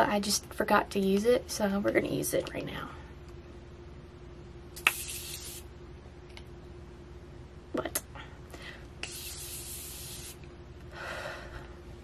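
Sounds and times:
short hiss of mist: 4.8s - 5.6s, 9.0s - 10.4s.

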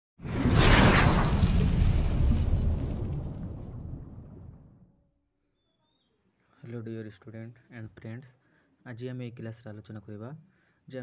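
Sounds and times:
deep rumble: 0.4s - 4.9s.

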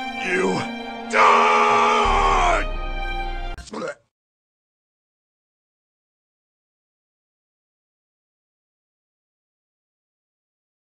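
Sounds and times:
background music: 0.0s - 3.8s
man's pained cry: 0.2s - 2.7s.

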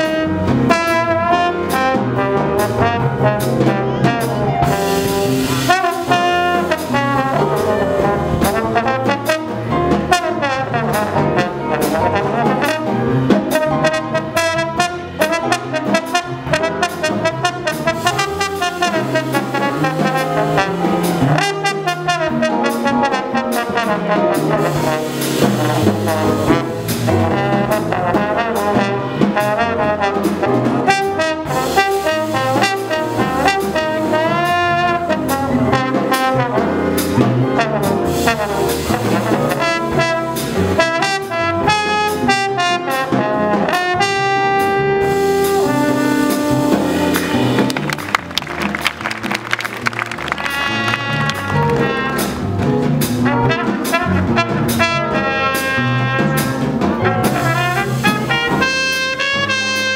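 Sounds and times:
drums: 0.0s - 59.9s
electric bass: 0.0s - 59.9s
trombone solo: 0.0s - 59.9s
trumpet lead: 0.0s - 59.9s.

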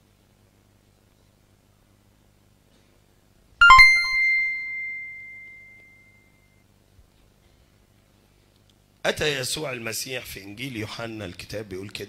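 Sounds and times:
bright bell-like chime: 3.6s - 6.2s.

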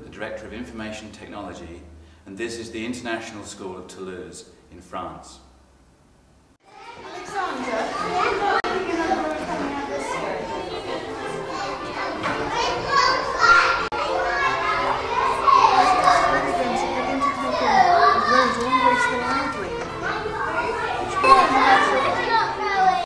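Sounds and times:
children chattering and calling out: 6.6s - 23.0s.

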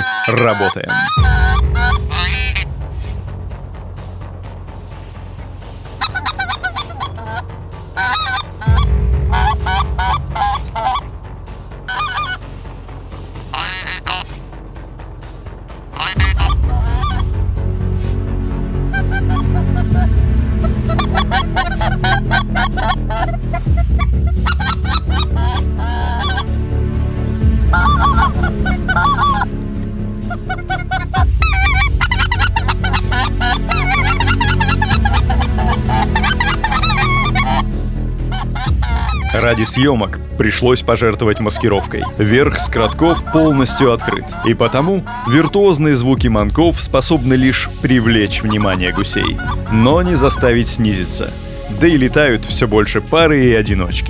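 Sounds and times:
goose calls honking: 0.0s - 2.7s, 5.7s - 14.5s, 15.2s - 26.6s, 27.6s - 29.6s, 30.2s - 46.1s, 46.7s - 52.5s.

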